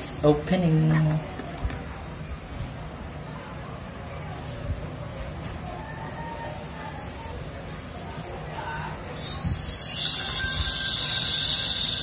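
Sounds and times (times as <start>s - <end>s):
phone start-up music: 9.2s - 12.0s.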